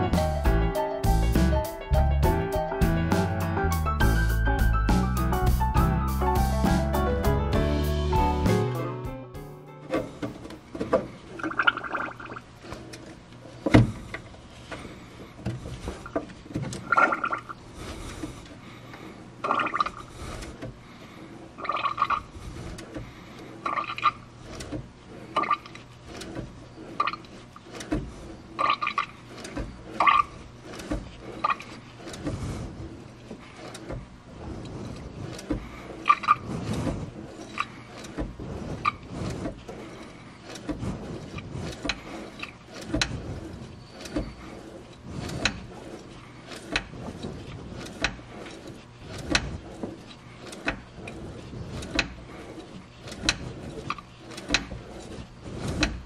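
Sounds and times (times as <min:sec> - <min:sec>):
fluid gurgling and spurting: 0:11.3 - 0:13.0, 0:16.8 - 0:18.1, 0:19.4 - 0:20.6, 0:21.3 - 0:56.0.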